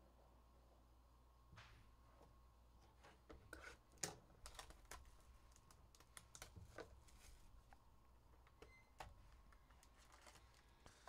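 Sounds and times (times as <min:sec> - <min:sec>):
cardboard packaging clicks and rustles: 0:04.0 - 0:07.6, 0:09.0 - 0:11.0.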